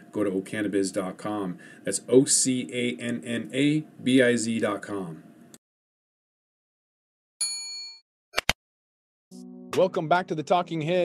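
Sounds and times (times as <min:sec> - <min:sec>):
bell-like ding: 0:07.4 - 0:08.0.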